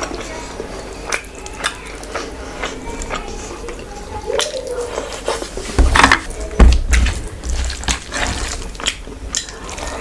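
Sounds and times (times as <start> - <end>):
wet squelching of food mixed by hand: 0.0 - 10.0.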